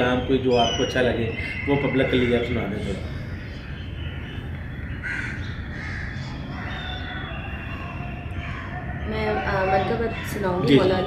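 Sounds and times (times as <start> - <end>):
bird calling harshly: 0.1 - 11.0.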